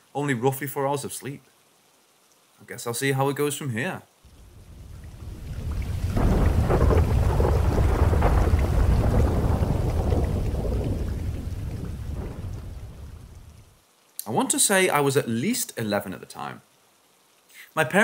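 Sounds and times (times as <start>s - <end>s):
rain: 0.0s - 18.0s
deep roll of thunder: 4.3s - 13.7s.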